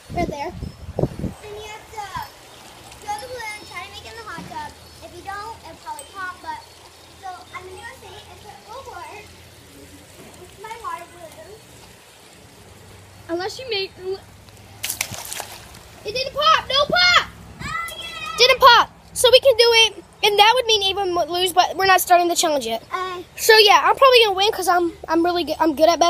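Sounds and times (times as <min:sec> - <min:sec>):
children talking and calling: 0:00.0 - 0:26.0.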